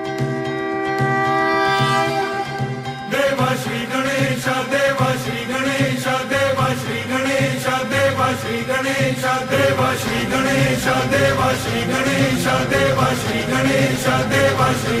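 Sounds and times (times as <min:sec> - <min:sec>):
steady percussion beat: 0:00.0 - 0:15.0
devotional chant with music: 0:02.0 - 0:15.0.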